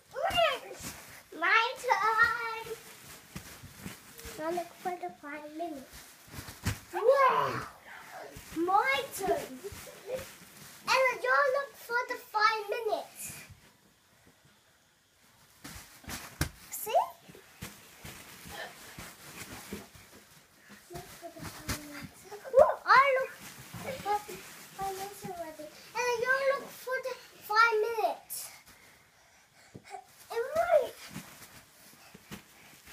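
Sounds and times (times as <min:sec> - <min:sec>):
young children calling out: 0:07.0 - 0:07.8.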